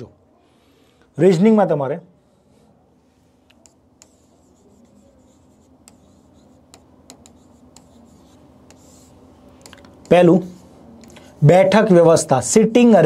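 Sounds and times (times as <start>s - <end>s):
pen scratching on board: 3.5s - 9.3s
pen tapping on board: 6.7s - 8.0s.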